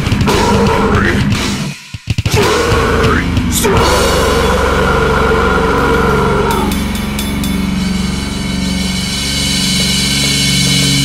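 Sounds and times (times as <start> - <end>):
distorted guitar and bass chord: 0.0 - 1.7, 2.3 - 11.0
higher held sound: 2.4 - 11.0.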